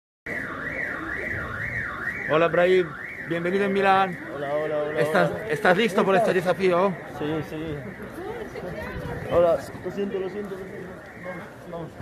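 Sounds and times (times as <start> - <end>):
electronic alarm wailing: 0.3 - 11.9.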